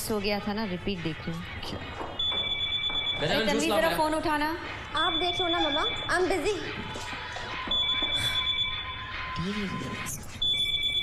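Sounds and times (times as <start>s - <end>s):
high-pitched electronic tones: 1.4s - 11.0s.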